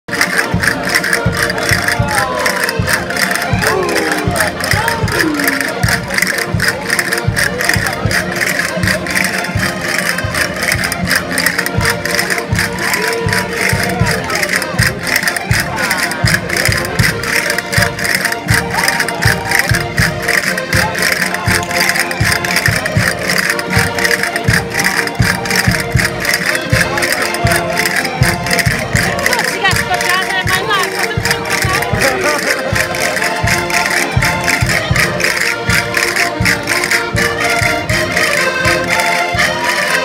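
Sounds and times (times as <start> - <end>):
concertina and guitar folk tune: 0.1 - 40.0
crowd voices: 0.1 - 40.0.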